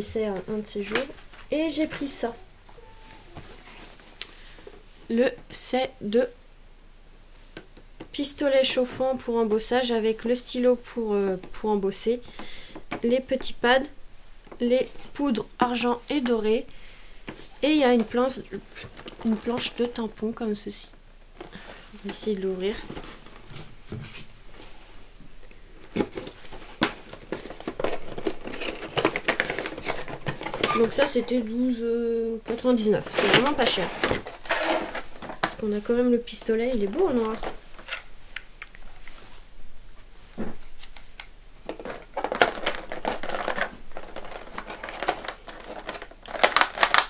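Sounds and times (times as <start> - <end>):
cardboard box rustling: 25.9 - 31.4
plastic packaging crinkling: 25.9 - 31.5, 32.5 - 38.1, 40.6 - 47.0
small crackles: 40.6 - 47.0.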